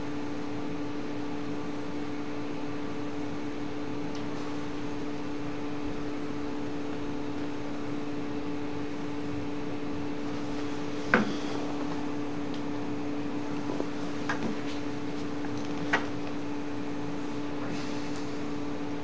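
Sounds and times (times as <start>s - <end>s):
steady electrical hum: 0.0s - 19.0s.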